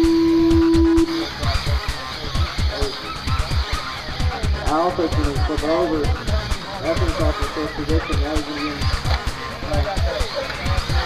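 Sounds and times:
loud electronic beep: 0:00.0 - 0:01.4
music with a steady beat: 0:00.0 - 0:11.0.

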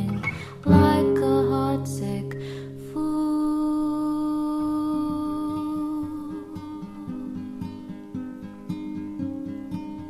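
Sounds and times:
fingerpicked acoustic guitar: 0:00.0 - 0:10.0.

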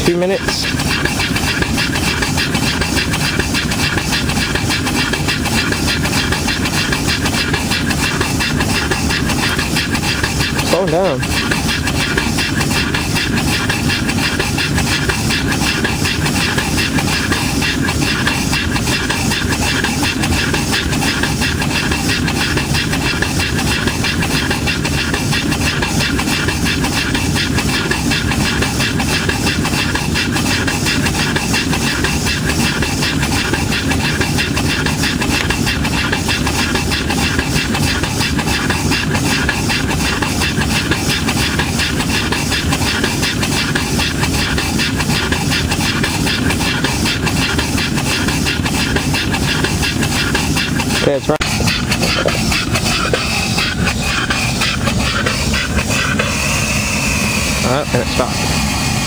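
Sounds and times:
steam engine exhaust beats: 0:00.0 - 0:59.0
steam hissing: 0:00.0 - 0:59.0.

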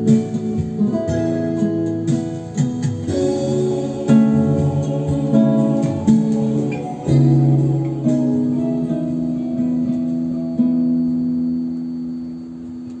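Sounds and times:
fingerpicked classical guitar: 0:00.0 - 0:13.0.

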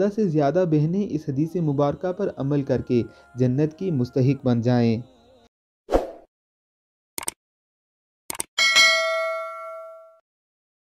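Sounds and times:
bell-like notification ding: 0:08.6 - 0:10.2.

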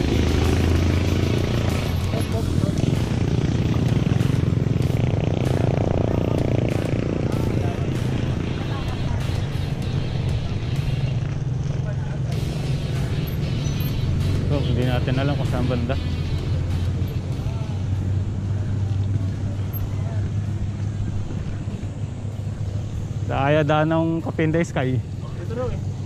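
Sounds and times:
motorcycle passing: 0:00.0 - 0:26.0
traffic: 0:00.0 - 0:26.0.

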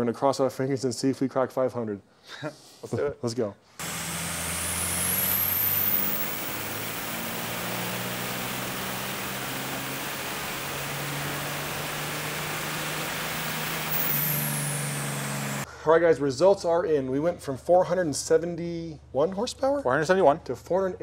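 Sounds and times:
diesel engine revving: 0:03.8 - 0:15.7
turbo whistle: 0:04.2 - 0:15.6.

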